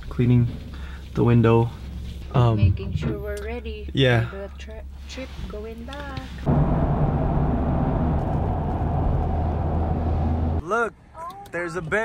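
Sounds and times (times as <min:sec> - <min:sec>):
vehicle driving rumble: 0:00.0 - 0:10.6.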